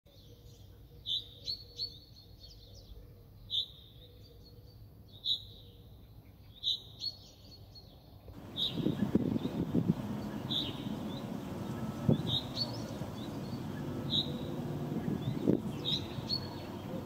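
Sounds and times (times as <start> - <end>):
small birds chirping: 0.1 - 17.0
faint low hum: 8.4 - 17.0.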